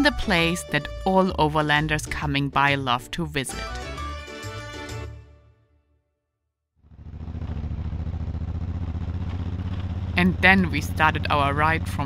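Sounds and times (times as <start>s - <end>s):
motorcycle engine running: 6.8s - 12.0s.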